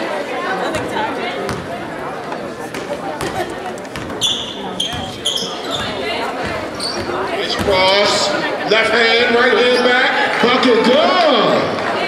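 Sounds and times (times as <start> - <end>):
spectator chatter: 0.0 - 12.0
sneakers squeaking on floor: 0.7 - 8.3.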